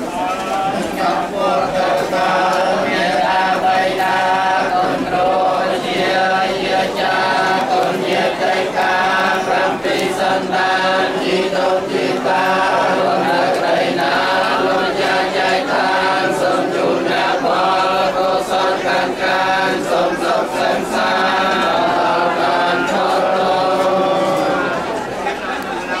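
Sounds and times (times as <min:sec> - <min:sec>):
monks chanting in unison: 0:00.0 - 0:25.3.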